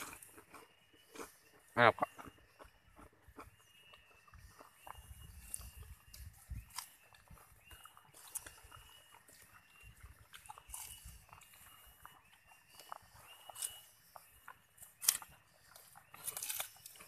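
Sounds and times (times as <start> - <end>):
chewing and mouth noises: 0.0 - 17.0.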